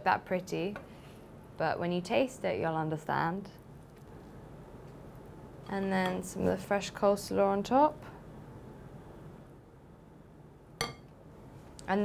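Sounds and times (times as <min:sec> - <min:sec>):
spoon clinking glass bowl: 0:10.8 - 0:11.1.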